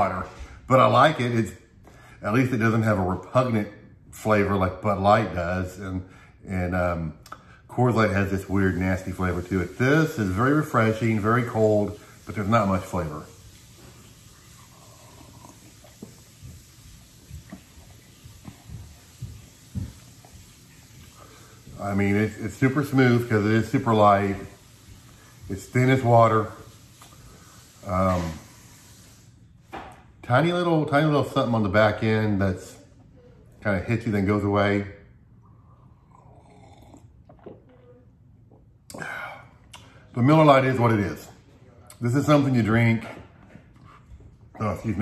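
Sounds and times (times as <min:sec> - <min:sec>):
man breathing and mouth noises: 0:14.4 - 0:20.2, 0:38.5 - 0:40.1
man sipping and swallowing: 0:14.4 - 0:20.4, 0:35.4 - 0:37.8, 0:38.4 - 0:40.0
quiet gulps: 0:35.3 - 0:40.1.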